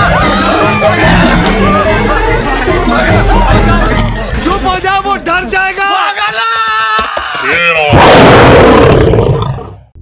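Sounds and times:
tiger roaring: 7.9s - 9.8s.

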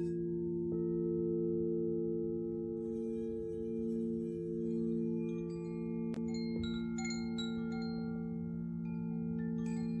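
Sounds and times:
singing bowls humming: 0.0s - 10.0s.

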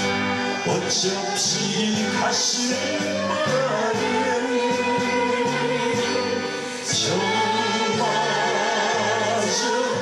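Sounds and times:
band accompaniment with choir backing: 0.0s - 10.0s
man singing into microphone: 0.5s - 10.0s.

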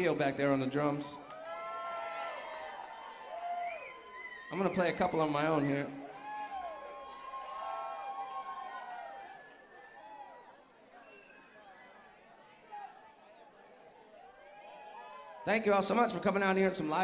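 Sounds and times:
audience chatter: 8.4s - 17.0s.

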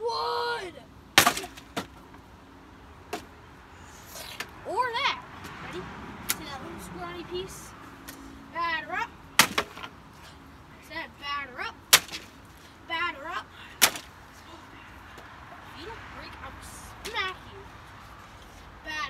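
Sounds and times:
wooden boards cracking: 1.2s - 2.0s, 9.4s - 10.0s, 11.9s - 12.4s, 13.8s - 14.1s
wood knocking and splintering: 9.4s - 9.9s.

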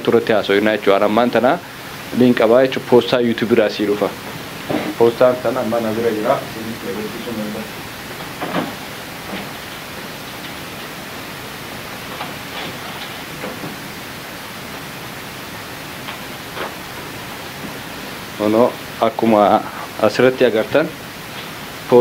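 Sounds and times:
recording hiss: 0.0s - 22.0s.

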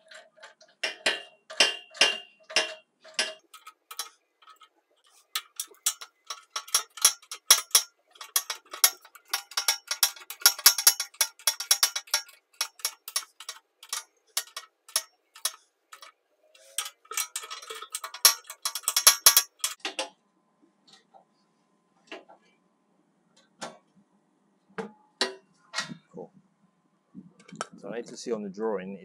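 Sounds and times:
socket ratchet clicking: 5.4s - 19.8s.

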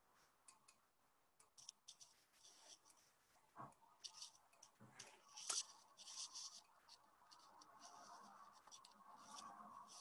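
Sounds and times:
soft scratchy rustles: 1.6s - 10.0s.

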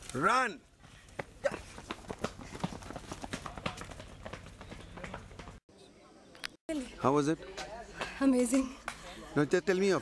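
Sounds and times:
running footsteps on dirt path: 0.7s - 5.6s.

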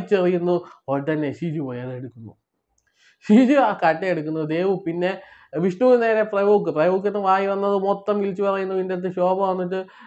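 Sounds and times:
man speaking: 0.0s - 2.4s, 3.2s - 10.0s.

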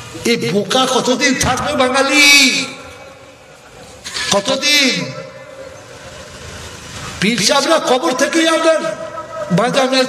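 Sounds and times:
man speaking over loudspeakers: 0.1s - 3.1s, 4.2s - 5.7s, 7.2s - 10.0s.

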